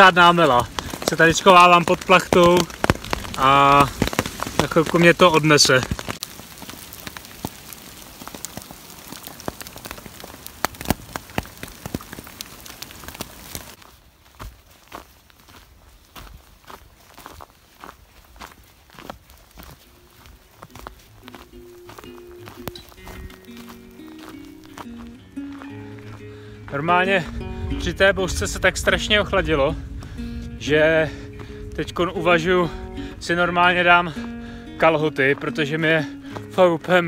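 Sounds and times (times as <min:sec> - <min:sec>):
footsteps on hail-strewn ground: 0:00.0 - 0:37.0
hail and rain on a tarp: 0:00.0 - 0:37.0
background music with held notes: 0:20.7 - 0:37.0.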